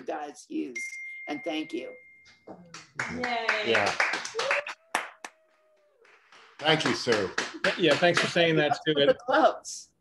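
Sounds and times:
faint steady held tone: 0.8s - 2.6s
hand clapping: 2.5s - 8.6s.

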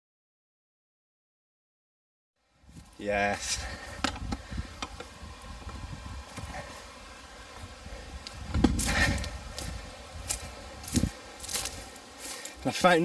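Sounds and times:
footsteps rustling through dry grass: 2.6s - 13.0s
microphone handling noise: 2.7s - 6.9s, 7.5s - 11.9s.

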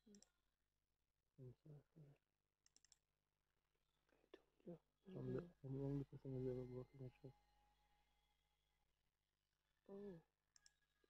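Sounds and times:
faint clicks: 0.1s - 0.3s, 2.6s - 3.0s, 10.5s - 10.8s
person talking quietly: 5.1s - 7.3s.

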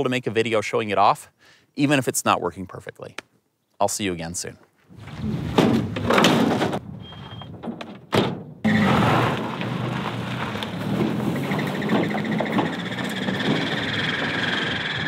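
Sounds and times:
truck door slamming: 5.5s - 9.3s.

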